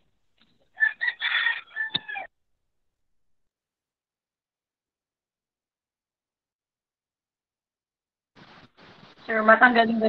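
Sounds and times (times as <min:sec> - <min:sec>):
rooster crowing: 0:00.8 - 0:02.3.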